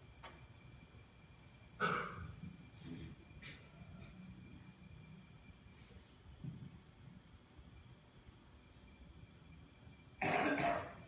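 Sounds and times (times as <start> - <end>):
man coughing: 10.2 - 11.0.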